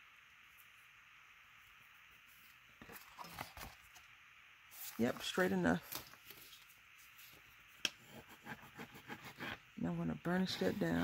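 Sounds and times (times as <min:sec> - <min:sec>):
faint room hiss: 0:00.0 - 0:11.0.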